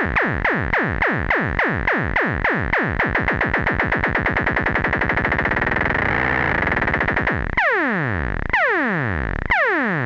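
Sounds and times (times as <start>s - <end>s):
synthesizer falling-pitch blips: 3.5s - 10.0s
steady high synth tone: 4.6s - 7.6s.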